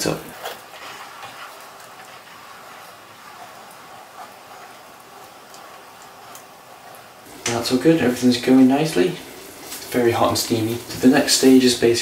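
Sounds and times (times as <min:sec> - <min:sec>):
sausages cooking in pan: 0:00.0 - 0:12.0
steaming saucepan hissing: 0:00.0 - 0:12.0.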